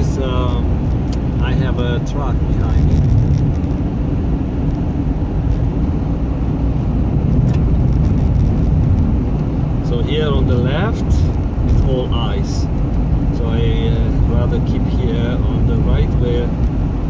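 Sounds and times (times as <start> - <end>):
car engine: 0.0 - 17.0
road rumble inside car: 0.0 - 17.0.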